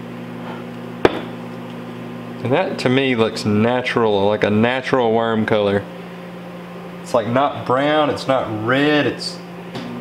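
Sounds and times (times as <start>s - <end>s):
appliance electrical hum: 0.0s - 10.0s.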